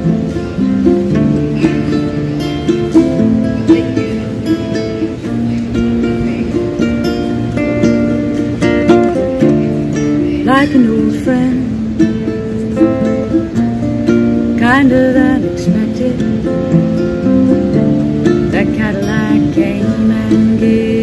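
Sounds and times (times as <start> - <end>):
acoustic guitar: 0.0 - 21.0
ukulele: 0.0 - 21.0.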